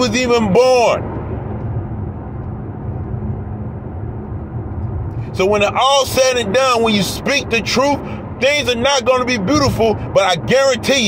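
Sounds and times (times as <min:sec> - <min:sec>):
faint constant hum: 0:00.0 - 0:11.0
vehicle engine rumble: 0:00.0 - 0:11.0.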